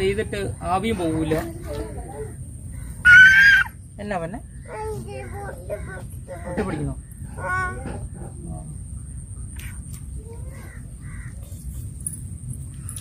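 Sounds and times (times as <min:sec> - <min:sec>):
low outdoor rumble: 0:00.0 - 0:13.0
caw-like bird calls: 0:10.5 - 0:11.6.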